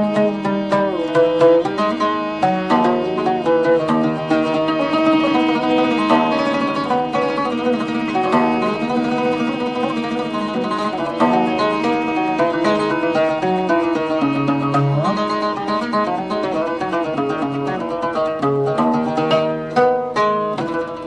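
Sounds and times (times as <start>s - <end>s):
held tones: 0.0s - 18.5s
oud melody: 0.0s - 21.0s.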